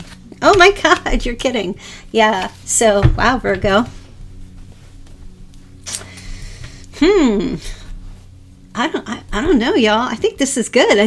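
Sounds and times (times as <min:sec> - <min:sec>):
soft background music drone: 0:00.0 - 0:11.0.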